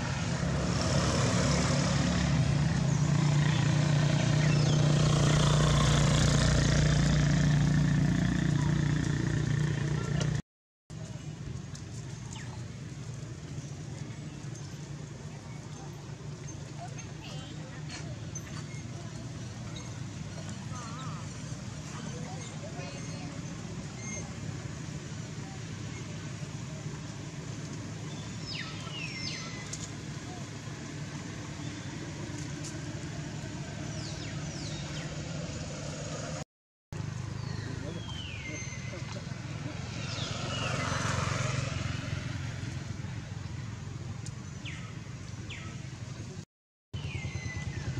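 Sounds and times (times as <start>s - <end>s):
low outdoor rumble: 0.0s - 36.4s
low engine hum: 11.0s - 36.4s.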